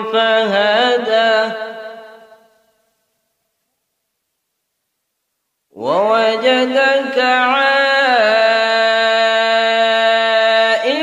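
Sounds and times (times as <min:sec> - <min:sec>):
man reciting melodically: 0:00.0 - 0:02.7, 0:05.7 - 0:11.0.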